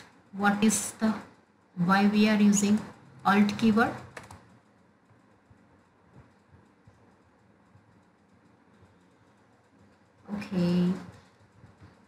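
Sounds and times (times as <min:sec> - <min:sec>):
computer keyboard keystrokes: 0:02.8 - 0:05.2.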